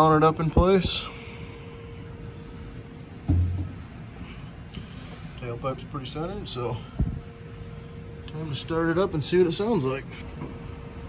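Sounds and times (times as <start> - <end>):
short low thud: 3.3 - 3.8.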